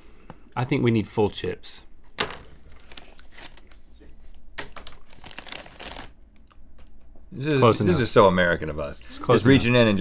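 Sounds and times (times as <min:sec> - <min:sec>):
plastic chip bag rustling: 0:04.8 - 0:06.2.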